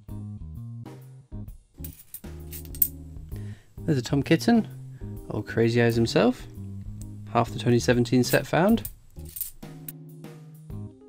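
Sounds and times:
metallic clicks of coins: 1.8 - 3.0, 8.2 - 9.9
lounge music with guitar and bass: 2.2 - 8.9.

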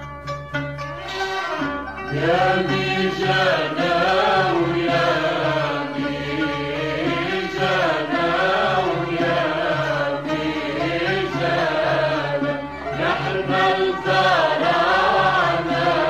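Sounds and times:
musical accompaniment: 0.0 - 16.0
person singing: 2.1 - 16.0.

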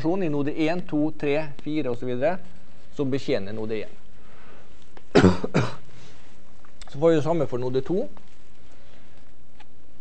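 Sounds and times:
man coughing: 5.1 - 5.9.

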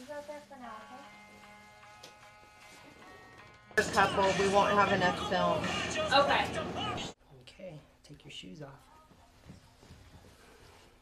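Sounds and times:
quiet background music: 0.0 - 7.2, 8.1 - 11.0.

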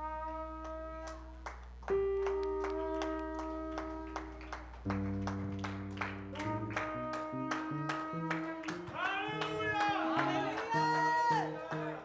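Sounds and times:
band playing slow chords: 0.0 - 9.0.

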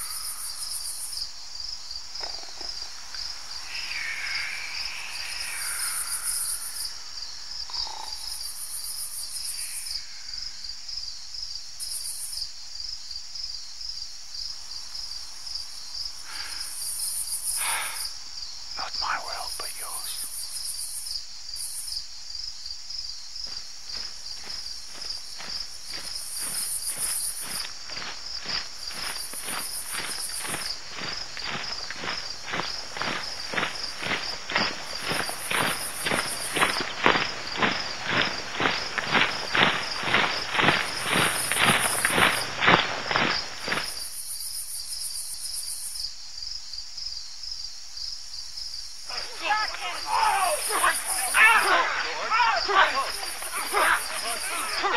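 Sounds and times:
crickets chirring: 0.0 - 54.9
footsteps approaching: 23.4 - 44.2, 49.1 - 54.9.

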